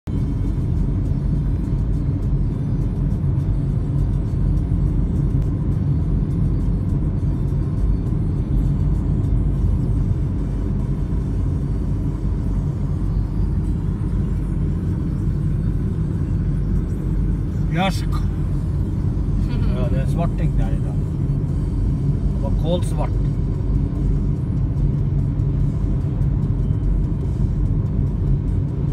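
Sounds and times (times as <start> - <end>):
vehicle engine and tyre rumble: 0.0 - 28.9.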